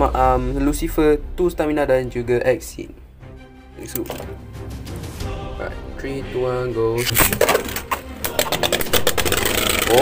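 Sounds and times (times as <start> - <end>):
spinning tops whirring: 7.5 - 10.0.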